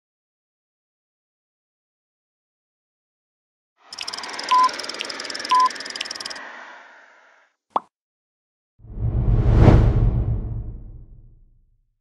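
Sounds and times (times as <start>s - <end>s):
short electronic beeps: 3.9s - 6.3s
electronic ticks: 3.9s - 6.4s
low whoosh: 8.9s - 11.5s.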